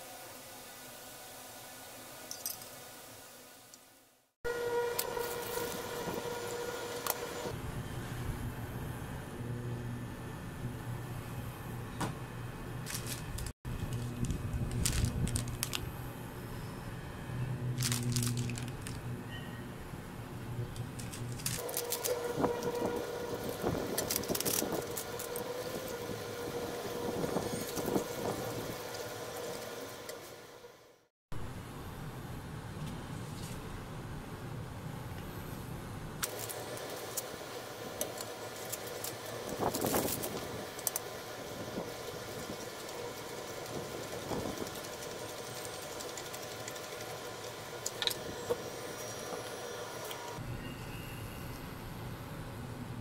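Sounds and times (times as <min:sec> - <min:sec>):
induction cooker humming: 0:04.4 - 0:30.9, 0:36.3 - 0:53.0.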